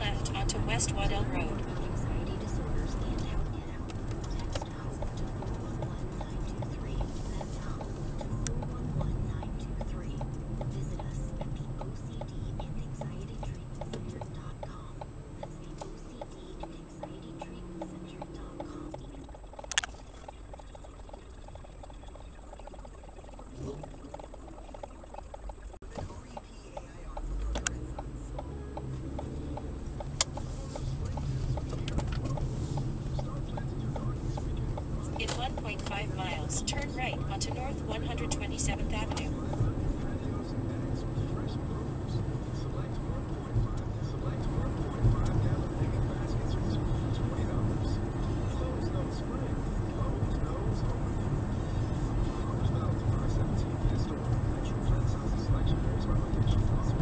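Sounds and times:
road and engine noise in car: 0:00.0 - 0:57.0
sharp clicks: 0:03.8 - 0:37.6.

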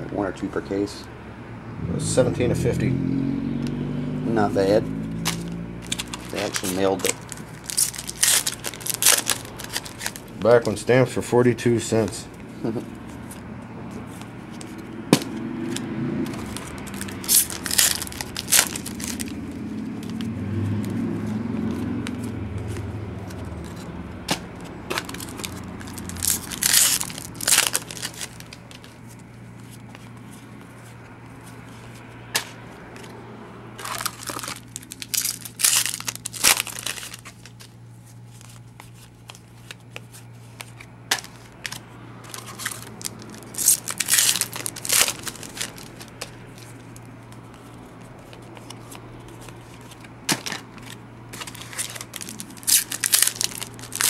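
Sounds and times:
cards being handled: 0:04.6 - 0:10.9, 0:11.7 - 0:33.2, 0:33.8 - 0:54.0
foil packs tearing and crinkling: 0:05.2 - 0:10.8, 0:15.7 - 0:20.3, 0:23.4 - 0:29.0, 0:33.8 - 0:37.7, 0:41.1 - 0:47.1, 0:49.6 - 0:54.0.

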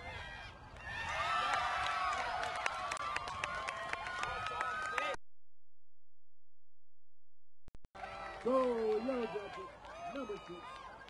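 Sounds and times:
people clapping: 0:01.4 - 0:05.2, 0:08.0 - 0:11.0.

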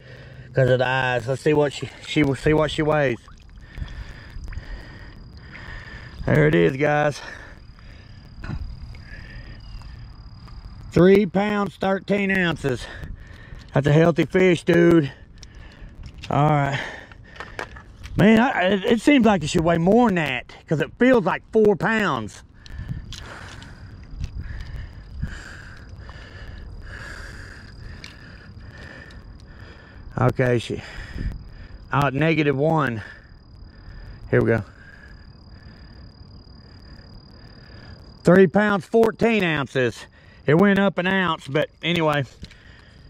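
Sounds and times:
low rumbling noise: 0:00.0 - 0:19.8, 0:22.3 - 0:32.0
high insect trill: 0:00.0 - 0:43.0.

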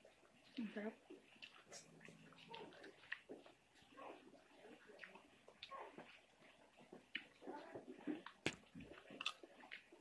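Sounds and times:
wet chewing: 0:00.0 - 0:10.0.

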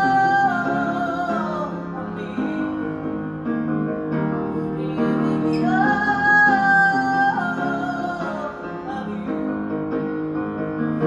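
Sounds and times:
woman singing: 0:00.0 - 0:03.2, 0:04.5 - 0:09.6
grand piano chords: 0:00.0 - 0:11.0.

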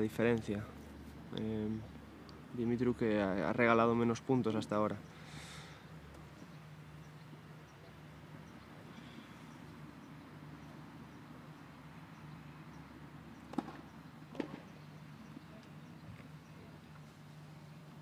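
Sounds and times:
steady low hum: 0:00.0 - 0:18.0
ball knocking on racket or court: 0:13.5 - 0:14.6.

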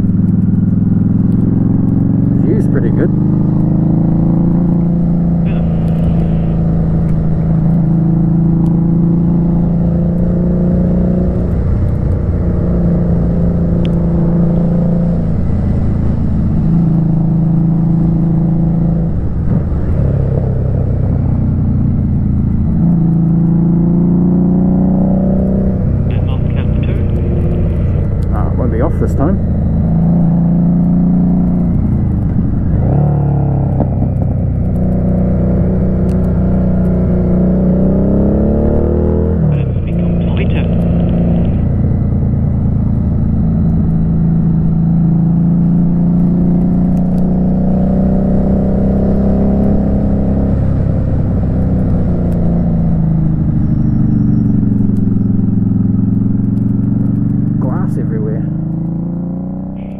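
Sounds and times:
motorcycle engine running: 0:00.0 - 0:59.9
wind and road noise: 0:00.0 - 0:59.9.

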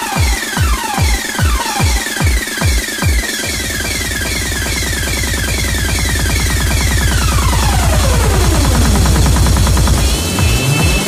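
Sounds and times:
pulsing electronic bass line: 0:00.0 - 0:11.0
rising synth sweep: 0:03.7 - 0:11.0.

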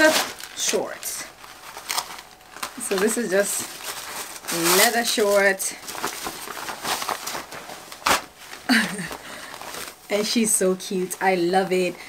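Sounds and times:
leather shorts rustling and crinkling: 0:00.0 - 0:11.8.

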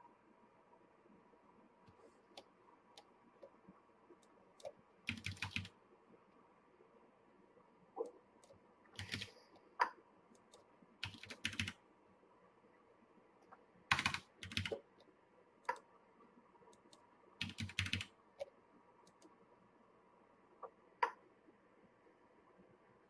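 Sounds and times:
keyboard keystrokes: 0:04.6 - 0:05.7, 0:08.4 - 0:09.3, 0:10.4 - 0:11.8, 0:13.9 - 0:14.8, 0:16.8 - 0:18.1.

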